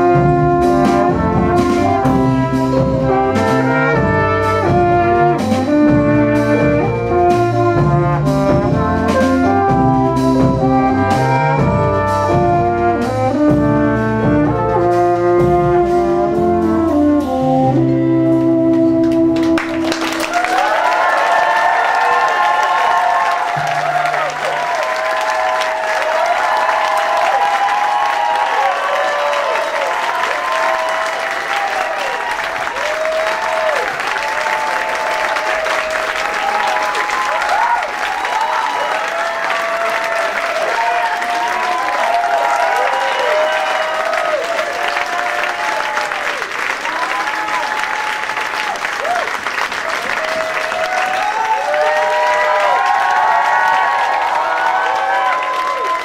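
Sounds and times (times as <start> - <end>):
audience clapping: 19.0 - 56.0
crowd whooping and shouting: 19.8 - 56.0.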